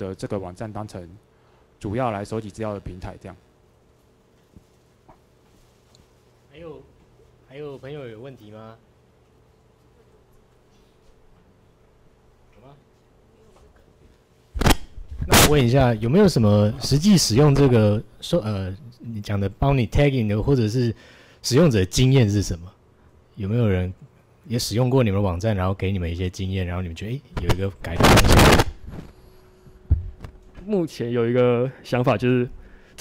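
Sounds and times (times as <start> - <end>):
low steady buzz: 0.0 - 33.0
microphone crackling rustle: 27.8 - 29.2
low microphone thump: 29.9 - 30.4.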